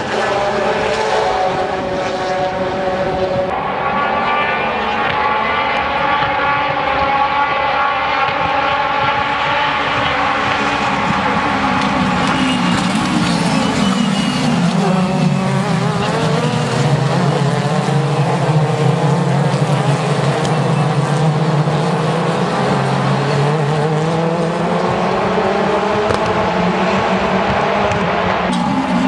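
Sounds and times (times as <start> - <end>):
race car engines: 0.0 - 29.0.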